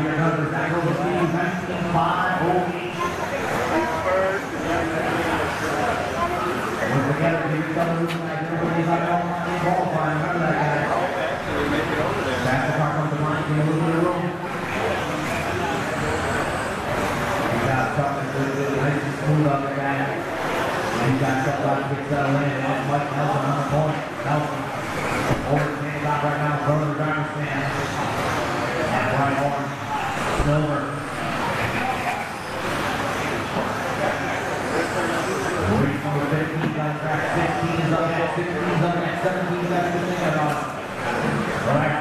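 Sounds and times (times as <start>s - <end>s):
faint voices: 0.0s - 42.0s.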